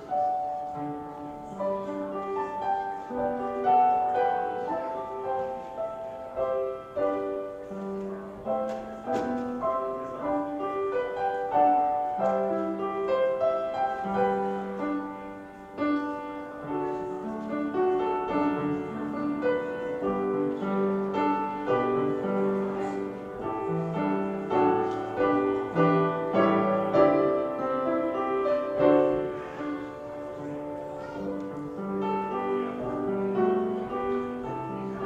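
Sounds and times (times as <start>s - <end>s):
solo piano: 0.0s - 35.0s.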